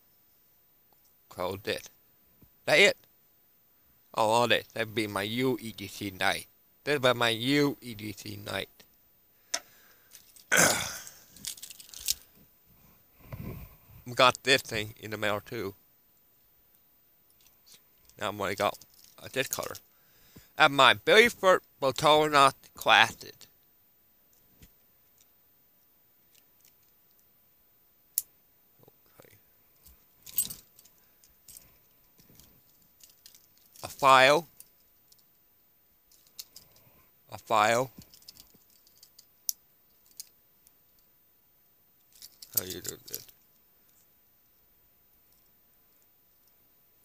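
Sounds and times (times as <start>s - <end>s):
man coughing loudly: 10.5s - 11.2s
metal keys jangling: 30.2s - 31.7s, 38.0s - 39.2s, 42.1s - 43.4s.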